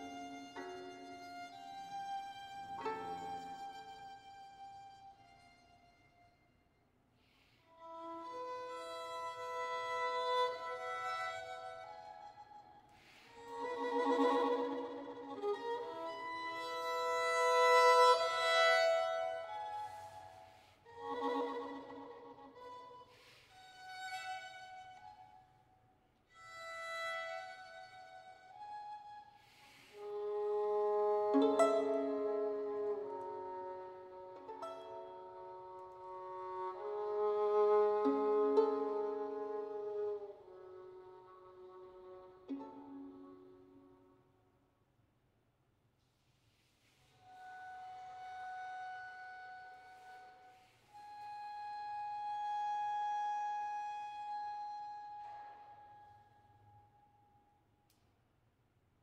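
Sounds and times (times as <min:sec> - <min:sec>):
solo violin bowed: 0:00.0 - 0:06.6, 0:07.2 - 0:25.6, 0:26.3 - 0:44.2, 0:46.4 - 0:56.5.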